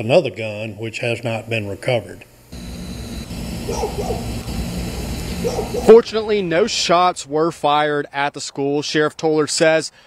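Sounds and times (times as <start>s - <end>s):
low rumble and hum: 2.4s - 7.6s.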